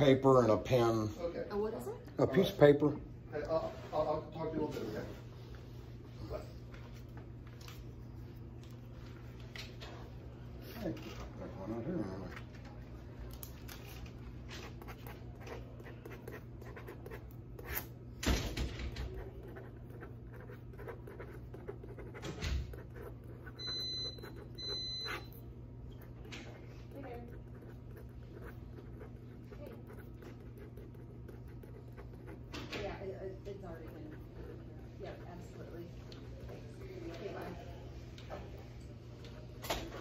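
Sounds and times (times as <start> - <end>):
pen scratching on paper: 14.1 - 17.9, 19.0 - 25.4, 26.8 - 32.9, 33.6 - 37.4.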